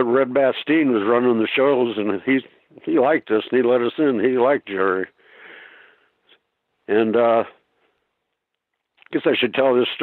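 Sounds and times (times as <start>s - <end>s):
man sniffing: 5.2s - 6.4s.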